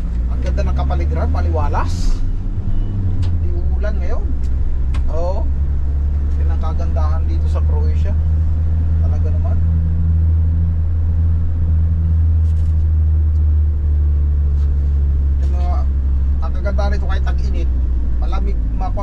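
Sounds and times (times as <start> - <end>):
van engine drone: 0.0 - 19.0.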